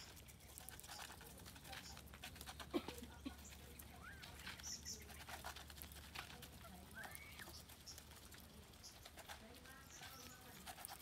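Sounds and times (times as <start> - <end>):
bills tapping on feed bowls: 0.0 - 11.0
faint bird calls: 6.6 - 8.1.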